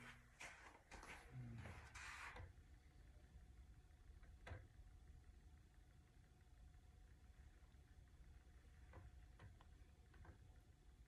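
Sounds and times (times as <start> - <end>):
rustling of someone moving: 0.0 - 2.5.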